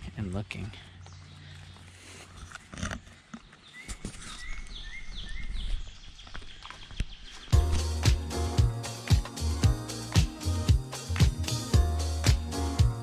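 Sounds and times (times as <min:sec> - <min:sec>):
bird chirping: 0:00.4 - 0:09.3
footsteps on woodland trail: 0:00.5 - 0:08.0
upbeat music with steady beat: 0:07.6 - 0:13.0.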